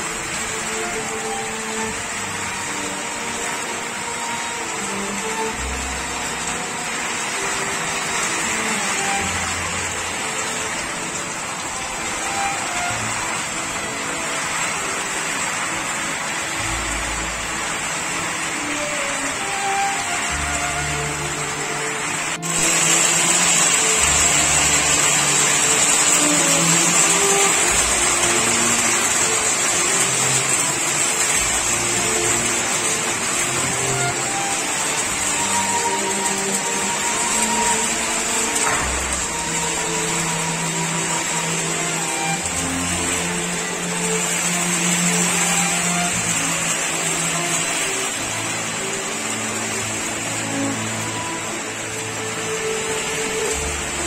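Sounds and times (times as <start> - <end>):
faint music: 0.0 - 54.0
heavy rain and hail: 0.0 - 54.0.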